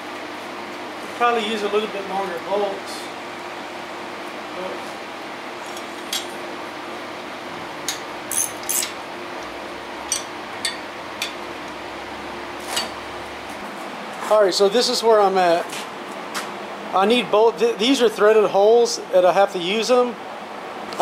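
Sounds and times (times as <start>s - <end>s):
steady low hum: 0.0s - 21.0s
wrench clinking on metal: 7.9s - 8.9s.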